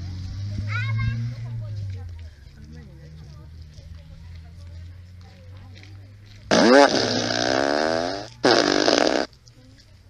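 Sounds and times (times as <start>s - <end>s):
fart sound effect: 6.5s - 9.3s.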